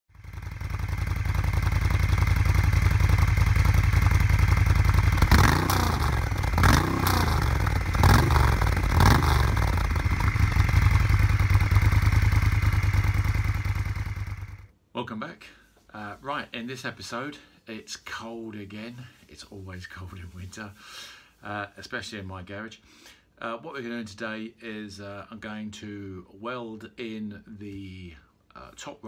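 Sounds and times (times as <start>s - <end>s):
motorcycle engine idling: 0.1s - 14.7s
engine revving: 0.2s - 14.7s.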